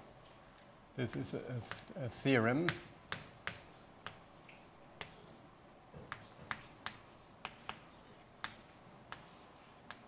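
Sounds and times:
chalk tapping on a blackboard: 1.0 - 5.4, 6.0 - 10.0.

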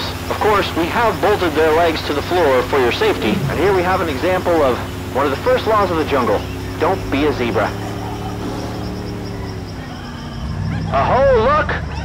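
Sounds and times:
steady low rumble: 0.0 - 8.4.

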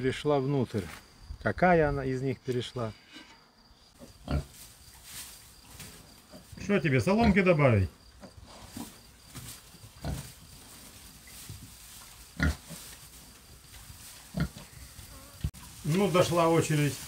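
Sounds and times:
pigs grunting: 4.0 - 4.6, 6.3 - 8.9, 12.4 - 12.9, 14.3 - 14.8
rooting in straw: 4.0 - 17.0.

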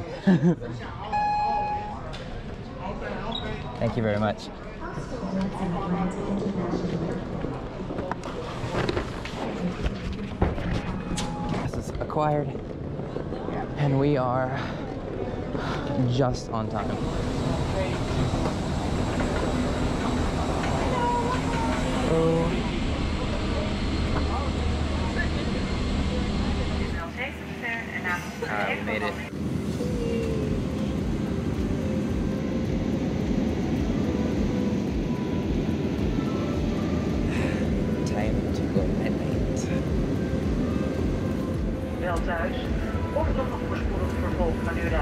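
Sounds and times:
steady rumbling noise: 16.6 - 45.0.

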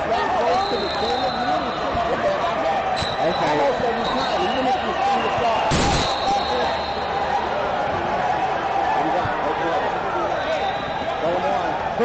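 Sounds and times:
spectators chattering in a hall: 0.0 - 12.0.

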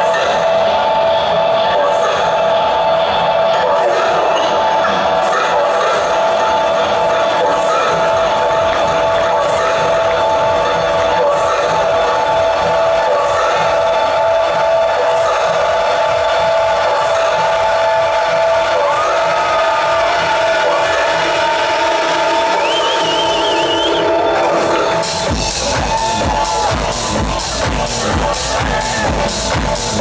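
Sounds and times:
crowd cheering and shouting: 0.0 - 30.0.

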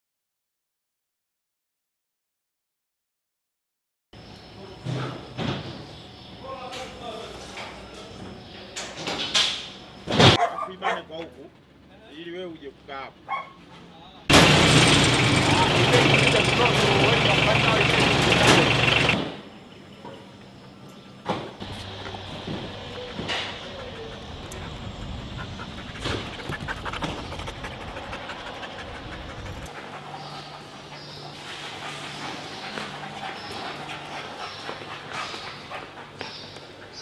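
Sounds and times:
dogs barking: 10.3 - 11.2, 13.2 - 13.6, 21.8 - 37.0
vehicle engine running loudly: 14.3 - 19.2
indistinct voices: 14.8 - 19.2.

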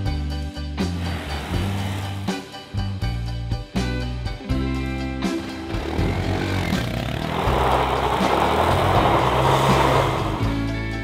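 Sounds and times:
motorcycle engine revving: 1.0 - 2.6, 5.4 - 10.8.

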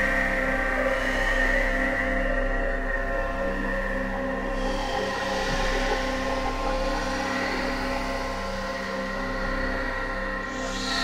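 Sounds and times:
ambient electronic drone music: 0.0 - 11.0.

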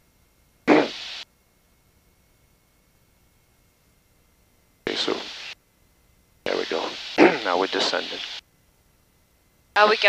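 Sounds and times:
headset intercom rushing hiss: 0.7 - 1.3, 4.9 - 5.6, 6.5 - 8.4.

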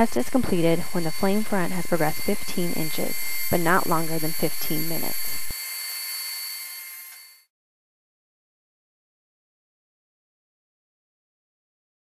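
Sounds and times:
thin high whining tones: 0.0 - 7.5.

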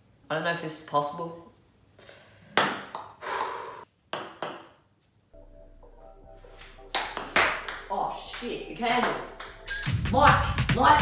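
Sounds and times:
table tennis ball bouncing: 2.6 - 4.8, 6.9 - 11.0.

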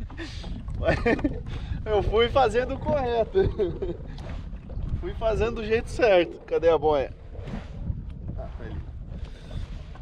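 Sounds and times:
water lapping around kayak: 0.0 - 10.0
wind buffeting microphone: 0.0 - 10.0.

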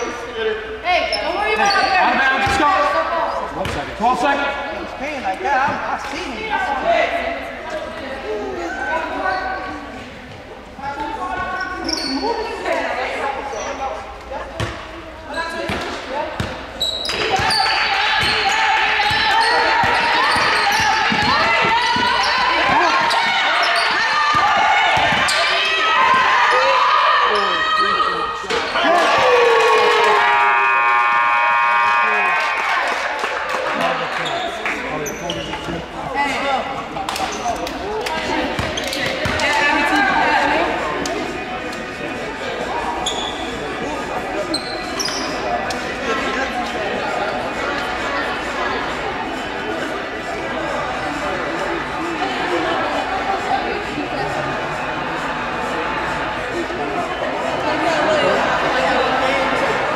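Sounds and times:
sneaker squeaks: 0.9 - 4.0, 11.0 - 12.7, 13.4 - 26.2, 34.2 - 35.9, 36.7 - 39.5, 42.9 - 45.8.

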